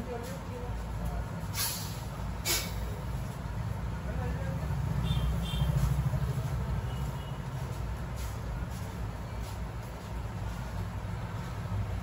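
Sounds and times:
street traffic rumble: 0:00.0 - 0:12.0
short hisses: 0:01.5 - 0:03.0.

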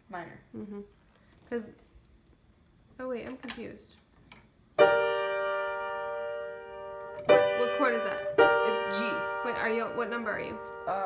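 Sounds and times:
piano chord ringing: 0:04.8 - 0:11.0.

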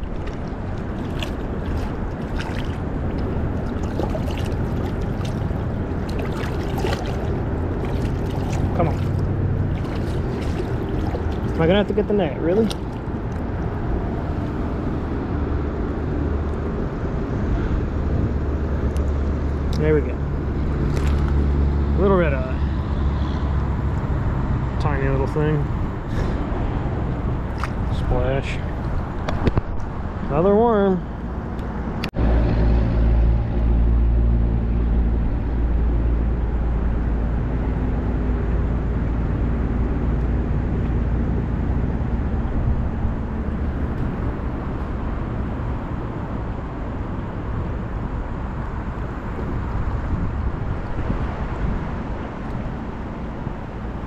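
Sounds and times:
faint engine hum: 0:00.0 - 0:54.0
road traffic rumble: 0:00.0 - 0:54.0.

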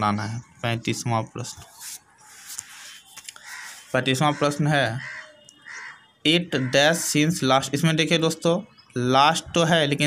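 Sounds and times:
book pages rustling: 0:01.6 - 0:03.9.

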